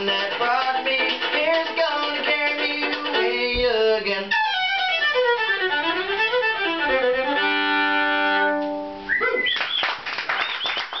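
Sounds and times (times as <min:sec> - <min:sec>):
fiddle playing: 0:00.0 - 0:09.1
people clapping: 0:09.2 - 0:11.0.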